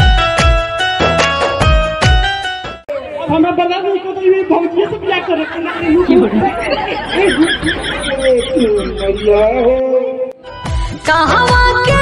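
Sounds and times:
people talking over one another: 2.9 - 10.3.

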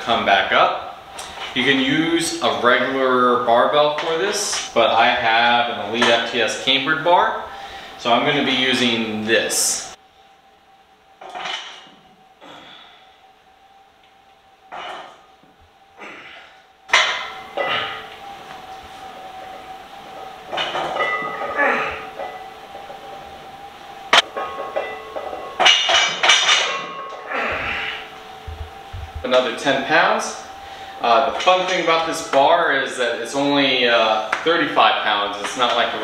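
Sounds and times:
barbell clanking on metal bars: 16.9 - 18.0, 24.1 - 27.8.

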